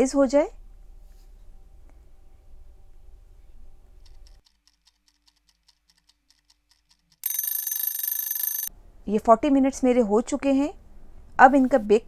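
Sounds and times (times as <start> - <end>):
alarm clock ringing: 7.2 - 8.7.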